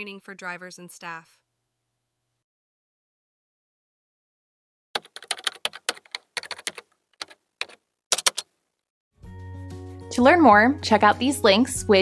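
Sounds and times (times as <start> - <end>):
keyboard key clicks: 5.0 - 8.5.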